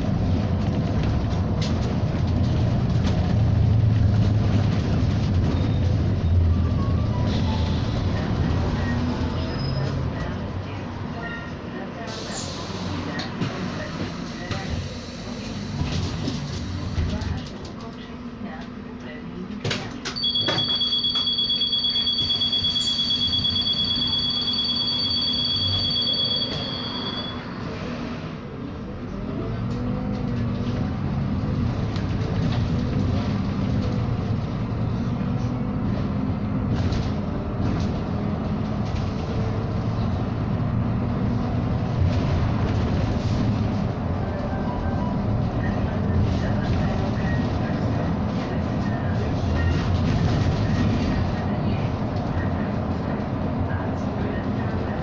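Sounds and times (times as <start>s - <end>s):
bus engine: 0.0s - 55.0s
high two-note beep: 20.2s - 27.5s.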